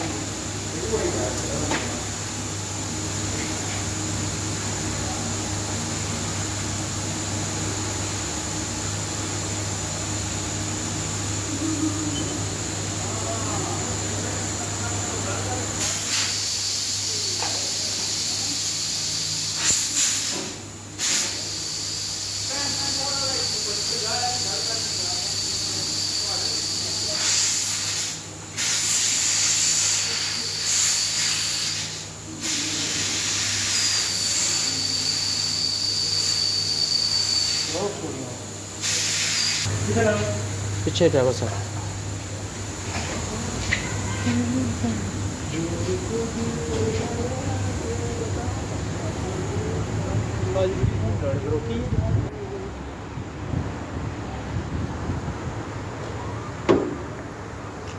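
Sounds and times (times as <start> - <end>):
steady hum: 0.0 - 57.9
hiss of escaping air: 15.8 - 37.9, 38.8 - 39.7.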